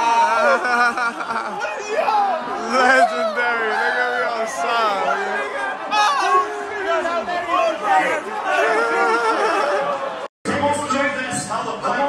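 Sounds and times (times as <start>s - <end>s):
crowd talking and shouting excitedly: 0.0s - 12.0s.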